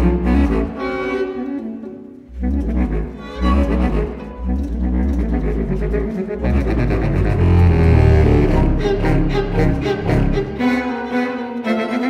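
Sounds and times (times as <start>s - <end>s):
chamber ensemble playing classical piece: 0.0s - 12.0s
deep sustained bass notes: 2.3s - 10.6s.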